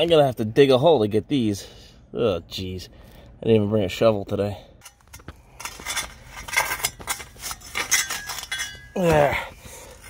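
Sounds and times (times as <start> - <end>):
metallic clinks against stones: 4.8 - 9.3
faint metal ring: 4.8 - 10.0
metal pipe scraping gravelly dirt: 4.8 - 10.0.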